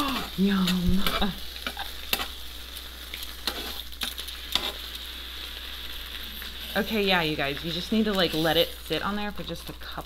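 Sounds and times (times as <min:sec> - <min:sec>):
food sizzling on a griddle: 0:00.0 - 0:10.0
metal tongs clicking on griddle: 0:03.1 - 0:04.7.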